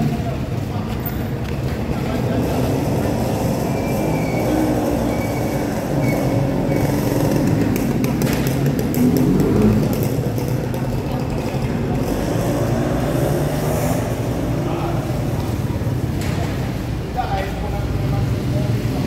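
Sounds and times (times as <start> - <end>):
chatter of many people: 0.0 - 19.0
motorcycle engines running: 0.0 - 19.0
steady traffic: 0.0 - 19.0
vehicle passing: 2.0 - 16.1.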